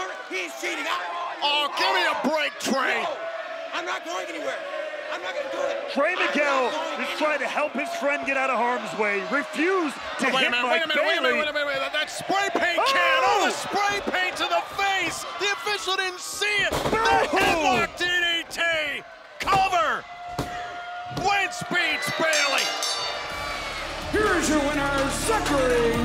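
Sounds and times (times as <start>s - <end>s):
excited shouting voices: 0.0s - 26.0s.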